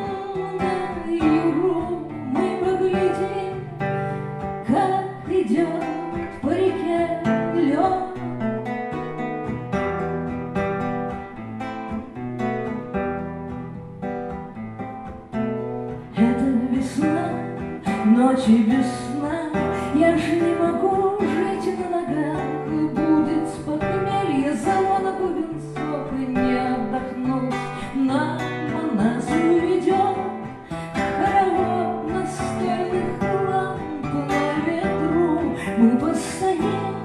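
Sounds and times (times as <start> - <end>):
woman singing ballad: 0.0 - 8.5, 16.0 - 37.0
fingerpicked acoustic guitar: 0.0 - 37.0.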